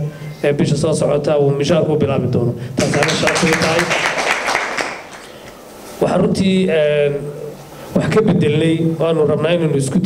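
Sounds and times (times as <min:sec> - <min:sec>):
audience applauding: 0:02.8 - 0:05.5.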